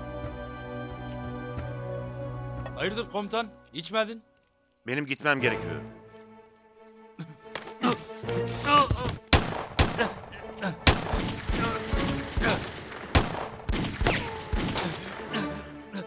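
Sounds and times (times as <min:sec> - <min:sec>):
handgun shots: 0:10.9 - 0:15.2.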